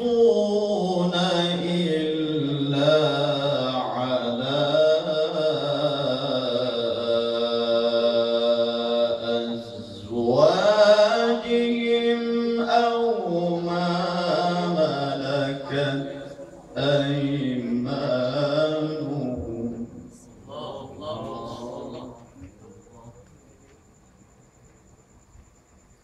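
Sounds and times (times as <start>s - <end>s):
man reciting melodically: 0.0s - 23.7s.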